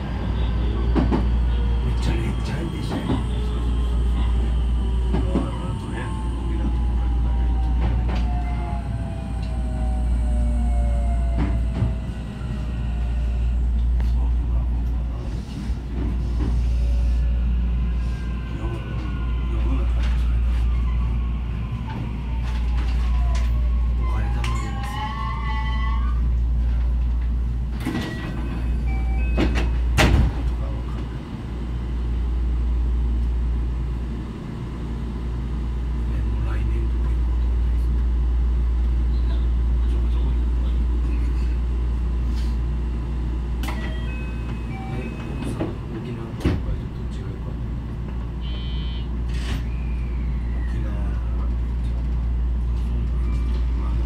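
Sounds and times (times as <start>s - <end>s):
train rumbling on track: 0.0s - 54.0s.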